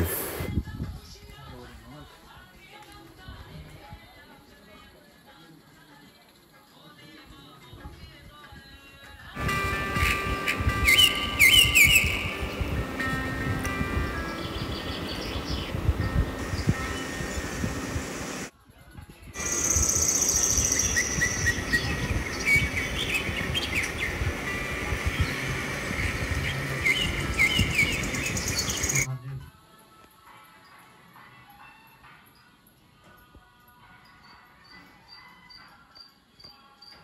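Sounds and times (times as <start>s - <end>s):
birds chirping: 9.4s - 18.5s, 19.4s - 29.1s
low rumbling noise: 9.4s - 18.5s, 19.4s - 29.1s.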